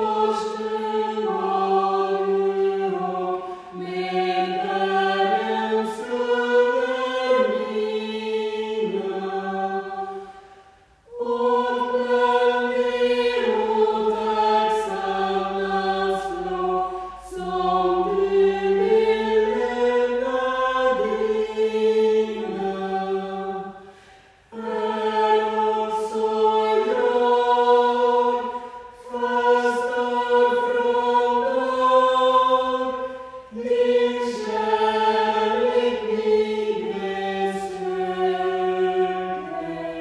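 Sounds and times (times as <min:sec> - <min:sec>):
vocal group singing: 0:00.0 - 0:40.0.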